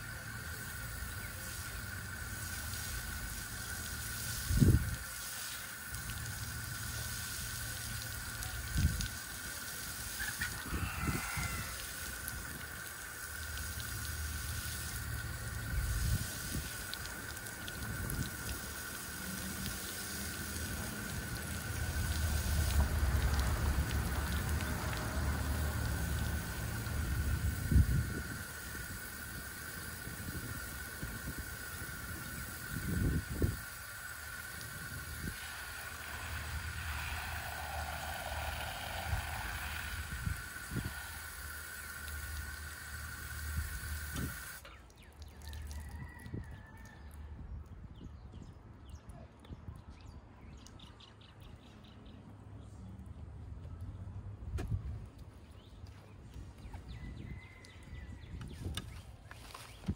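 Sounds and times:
shower spraying water: 0.0s - 44.8s
low rumble: 34.6s - 41.4s.

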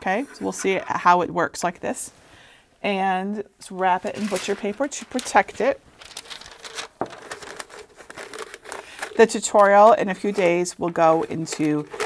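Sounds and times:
paper rustling and crinkling: 3.9s - 12.0s
sharp paper crackle: 4.0s - 10.6s.

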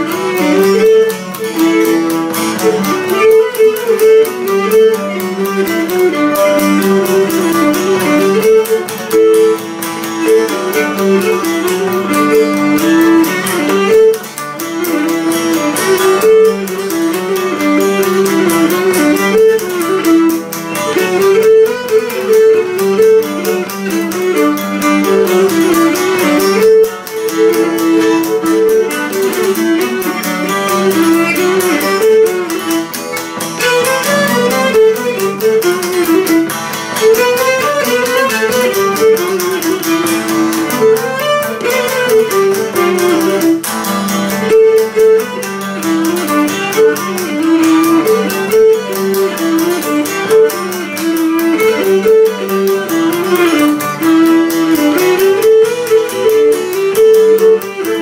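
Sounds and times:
bowed lyra melody: 0.0s - 58.0s
lute accompaniment: 0.0s - 58.0s.

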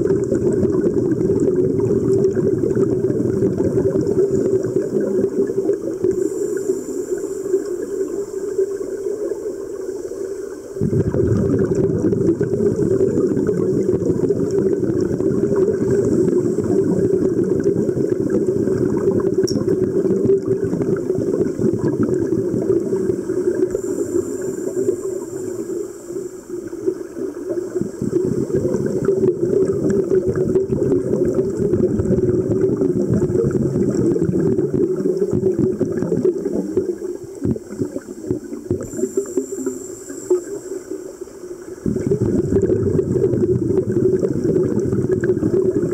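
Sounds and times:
underwater bubbles gurgling: 0.0s - 45.9s.

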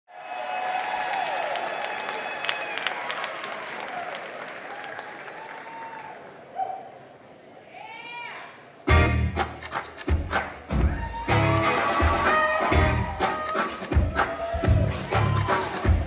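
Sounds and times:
audience applauding: 0.1s - 6.5s, 11.3s - 16.0s
whoops and shouts: 10.8s - 16.0s.

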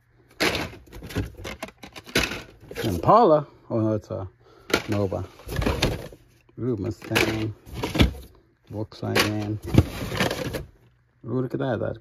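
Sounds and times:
plastic and card rustling: 0.4s - 3.1s, 4.7s - 8.3s, 9.0s - 10.8s.

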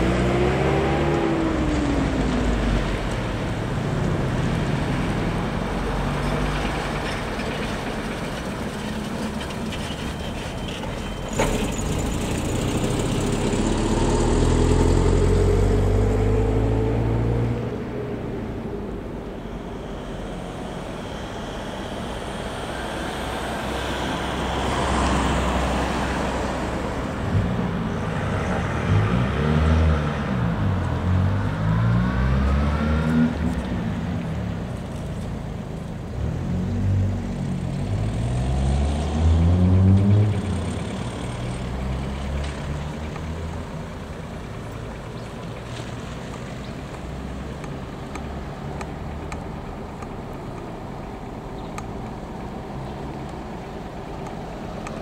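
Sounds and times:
vehicles driving past: 0.0s - 55.0s.

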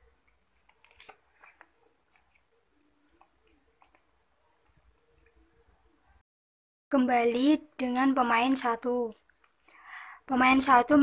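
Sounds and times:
light clicks and rustles of cards: 0.2s - 5.4s.

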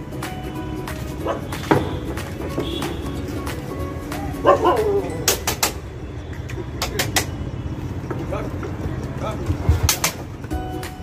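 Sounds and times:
music playing: 0.0s - 11.0s
dog yelping bark: 4.4s - 5.2s.

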